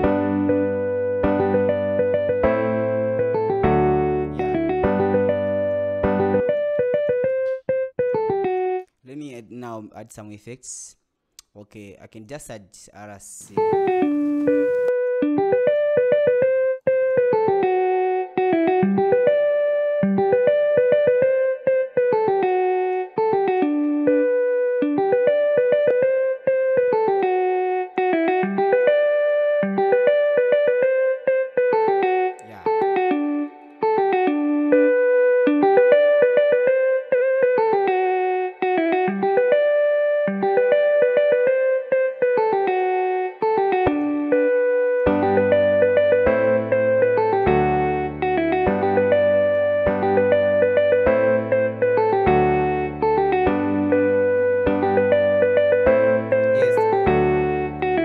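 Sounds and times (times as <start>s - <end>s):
plucked keys chord progression: 0.0s - 9.0s, 13.6s - 58.0s.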